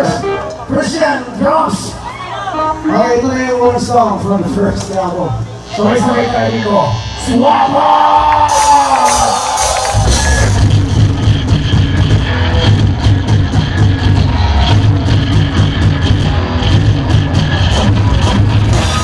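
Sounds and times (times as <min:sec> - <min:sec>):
live rock band playing: 0:00.0 - 0:01.9, 0:05.6 - 0:19.0
singer shouting: 0:07.2 - 0:10.6.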